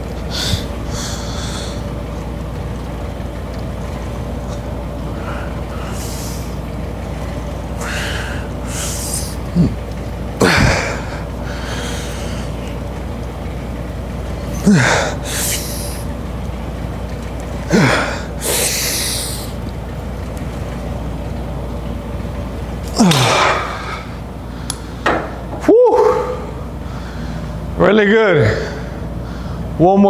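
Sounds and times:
low room hum: 0:00.0 - 0:30.0
heavy breathing: 0:00.3 - 0:01.9, 0:07.8 - 0:09.8, 0:10.4 - 0:12.7, 0:14.5 - 0:16.1
man grunting with effort: 0:09.5 - 0:09.8, 0:10.4 - 0:11.3, 0:14.5 - 0:16.0, 0:17.7 - 0:19.4, 0:22.9 - 0:24.1.

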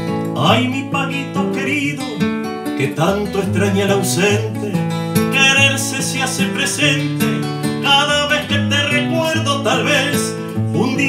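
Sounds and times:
guitar chords: 0:00.0 - 0:11.0
man singing: 0:00.3 - 0:11.0.

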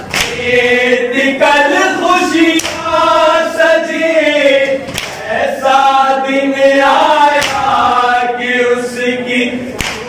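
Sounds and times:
sharp slap: 0:00.0 - 0:00.5, 0:02.5 - 0:03.0, 0:04.8 - 0:05.3, 0:07.3 - 0:07.8, 0:09.7 - 0:10.0
men chanting in chorus: 0:00.0 - 0:10.0.

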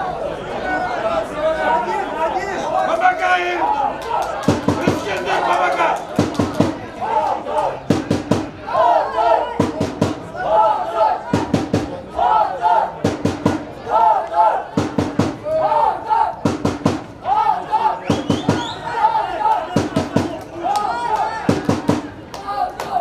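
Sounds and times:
crowd chanting: 0:00.0 - 0:23.0
drum beating: 0:04.4 - 0:05.2, 0:06.1 - 0:07.0, 0:07.8 - 0:08.7, 0:09.4 - 0:10.4, 0:11.2 - 0:12.1, 0:12.9 - 0:13.8, 0:14.7 - 0:15.6, 0:16.3 - 0:17.4, 0:18.1 - 0:18.8, 0:19.7 - 0:20.6, 0:21.2 - 0:22.3.

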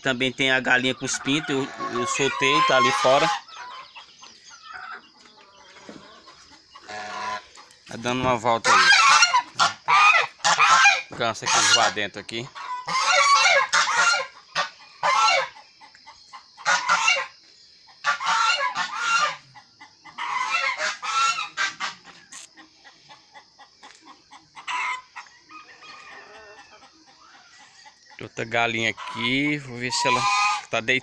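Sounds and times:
geese honking: 0:00.0 - 0:17.4, 0:18.0 - 0:31.0.

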